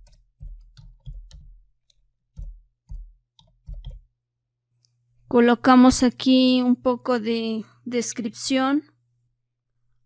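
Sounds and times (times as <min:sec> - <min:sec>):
keyboard keystrokes: 0:00.0 - 0:04.1.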